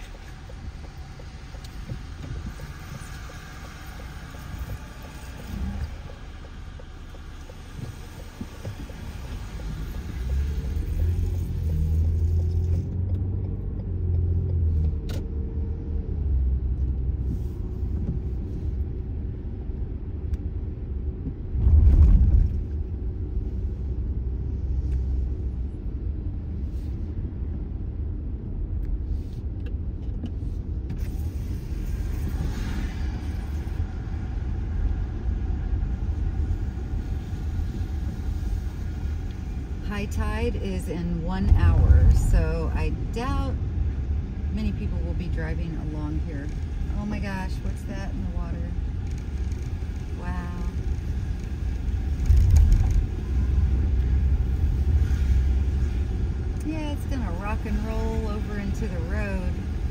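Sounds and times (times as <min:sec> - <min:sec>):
car engine and tyres on wet road: 0:00.0 - 0:59.9.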